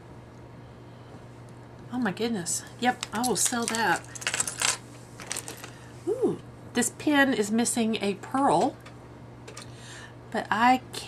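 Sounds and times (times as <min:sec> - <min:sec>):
metal jewelry clinking on wood: 0:03.0 - 0:05.8.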